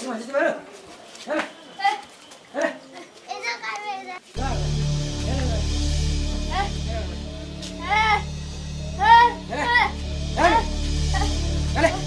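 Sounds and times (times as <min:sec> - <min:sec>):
children calling out: 0:07.6 - 0:08.3.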